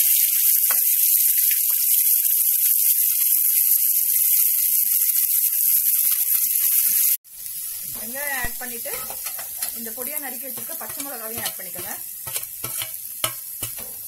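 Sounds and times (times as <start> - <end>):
hot oil sizzling: 0.0 - 14.0.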